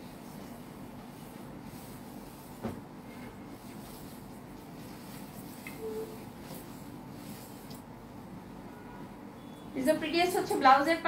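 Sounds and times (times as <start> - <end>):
low room hum: 0.0 - 11.0
soft thump: 2.6 - 2.9.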